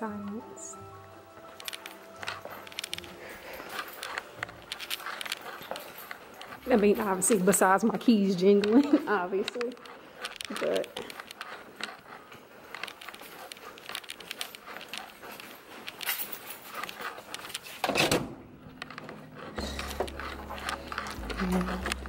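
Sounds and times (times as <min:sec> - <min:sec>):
keys jingling: 0:01.3 - 0:18.0, 0:18.8 - 0:22.0.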